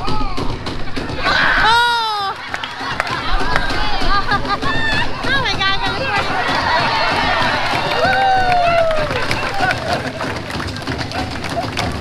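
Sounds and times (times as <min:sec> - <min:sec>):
laughter: 0:01.2 - 0:05.2.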